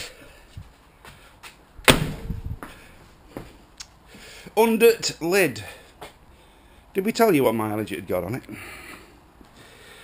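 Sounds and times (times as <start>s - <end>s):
car door slam: 1.9s - 2.3s.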